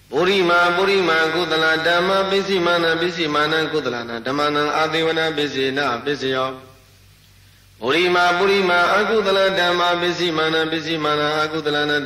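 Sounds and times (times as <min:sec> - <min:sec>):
man chanting: 0:00.1 - 0:06.8, 0:07.8 - 0:12.0.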